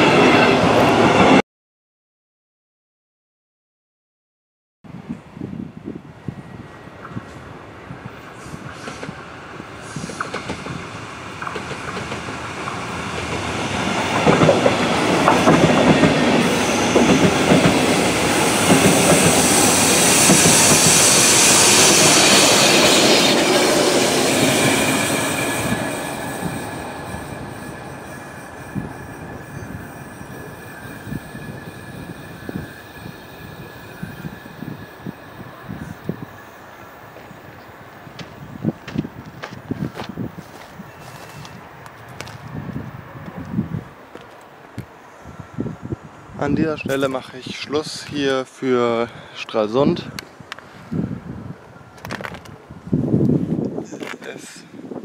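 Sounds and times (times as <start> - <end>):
electric train passing: 0.0 - 1.4, 4.9 - 55.0
train wheel clicks: 9.9 - 10.8, 11.4 - 16.4.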